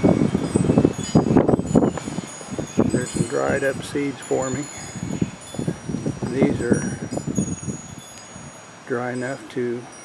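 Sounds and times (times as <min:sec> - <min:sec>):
chimes ringing: 0:00.0 - 0:10.0.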